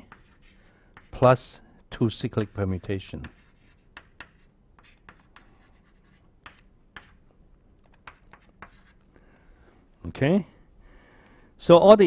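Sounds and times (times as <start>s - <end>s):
chalk scratching on chalkboard: 0.0s - 1.5s, 2.1s - 7.2s, 8.0s - 9.0s.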